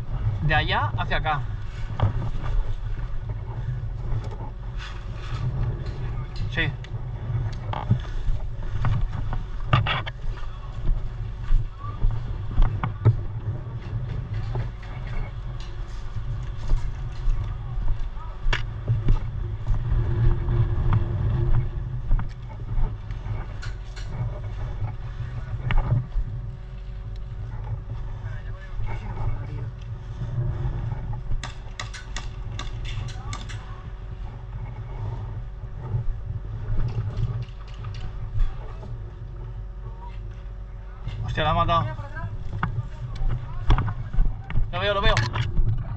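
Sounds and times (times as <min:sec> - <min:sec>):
wind rumble on microphone: 0:00.0 - 0:45.9.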